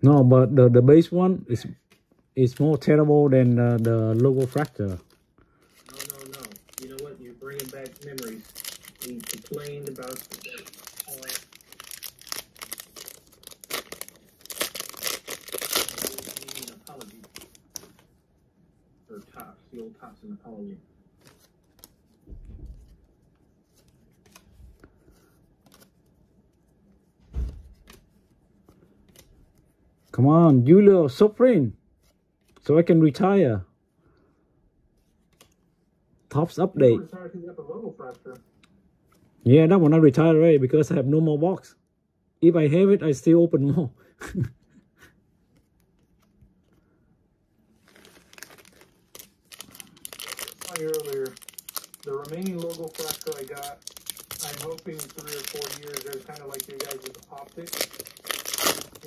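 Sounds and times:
trading cards clicking and rustling: 1.9 - 18.1, 47.9 - 59.0
wrapper crinkling and tearing: 2.4 - 18.1, 47.7 - 59.0
soft thump: 22.3 - 22.8, 27.2 - 27.7.

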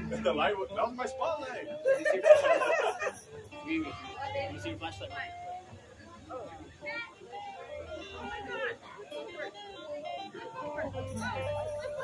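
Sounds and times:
indistinct talking: 0.0 - 12.0
stray instrument notes: 7.8 - 12.0.

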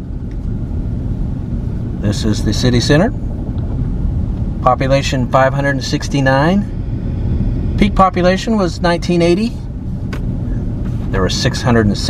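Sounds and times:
car engine and tyres rumble: 0.0 - 12.0.

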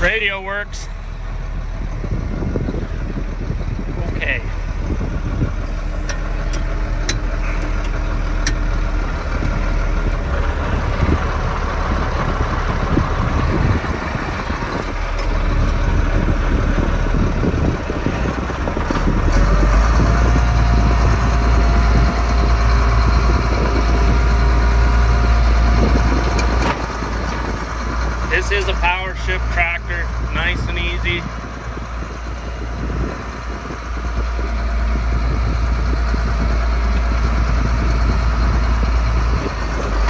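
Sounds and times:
tractor diesel engine running: 0.0 - 40.0.

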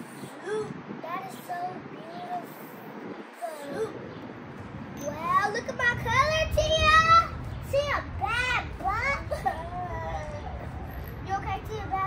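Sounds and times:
girl's high-pitched voice: 0.2 - 4.1, 5.0 - 10.6, 11.2 - 12.0.

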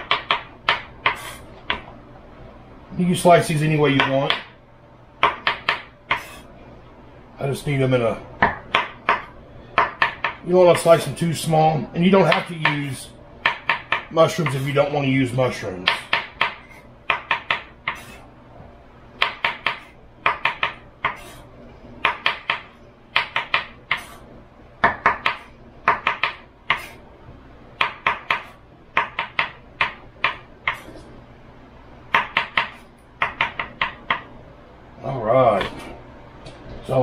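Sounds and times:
knife chopping on wooden board: 5.2 - 6.4, 8.4 - 10.4, 13.4 - 14.7, 15.8 - 18.1, 19.2 - 21.4, 22.0 - 24.2, 24.8 - 27.0, 27.8 - 30.9, 32.1 - 34.3.

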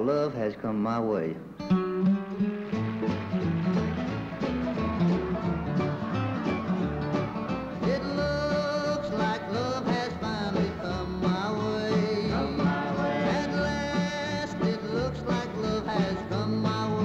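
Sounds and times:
country band playing: 1.6 - 17.0.

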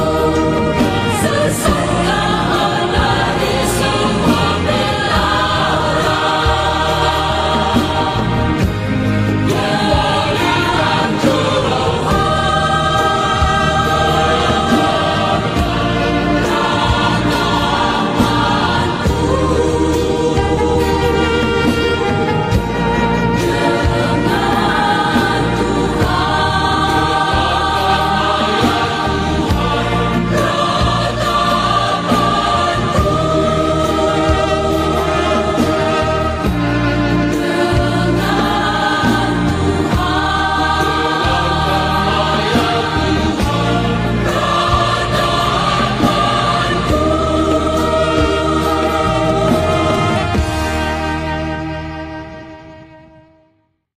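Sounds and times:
choir singing a worship song: 0.0 - 53.0.

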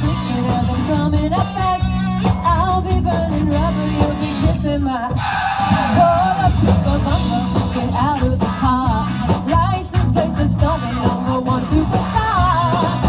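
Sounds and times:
pop-rock band playing live: 0.0 - 13.0
woman singing lead vocal: 0.0 - 13.0.

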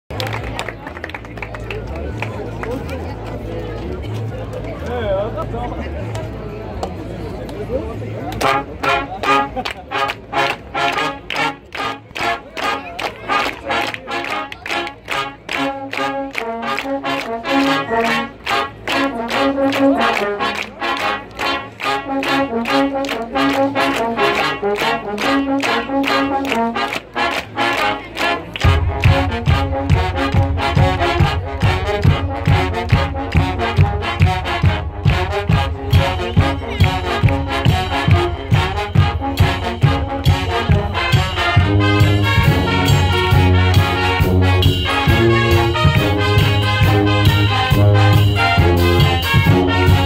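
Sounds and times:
voices chattering: 0.2 - 50.0
brass band playing: 8.3 - 50.0.

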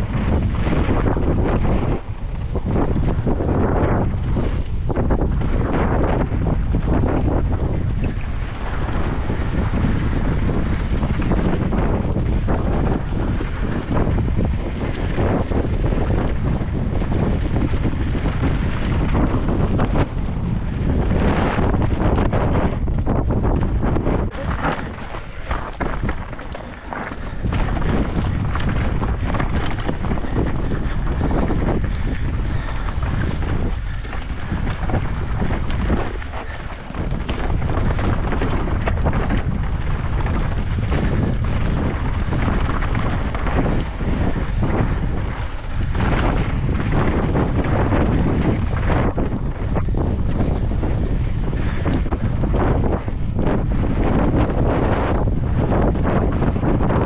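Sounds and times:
bike knocking and rattling: 0.0 - 57.0
bike tyres rumbling: 0.0 - 57.0
wind buffeting microphone: 0.0 - 57.0.

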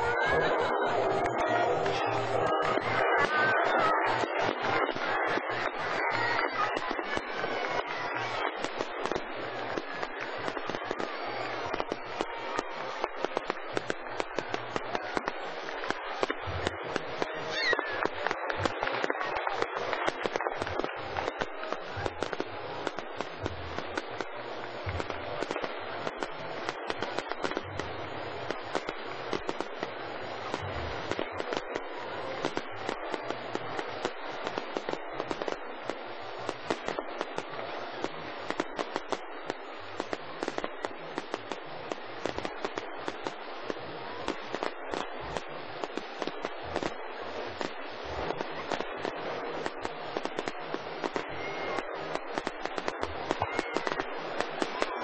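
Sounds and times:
fireworks crackling: 0.0 - 55.0.

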